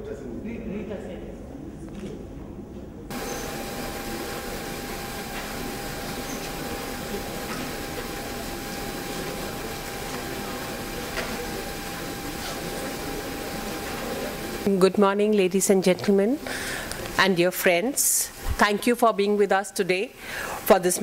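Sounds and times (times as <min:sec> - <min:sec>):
steady background hiss: 0:02.6 - 0:21.0
thin steady whine: 0:03.1 - 0:21.0.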